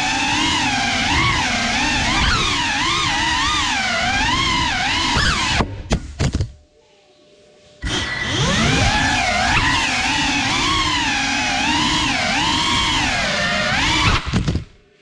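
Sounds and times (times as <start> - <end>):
drone motors whining: 0.0 - 5.7, 7.8 - 14.8.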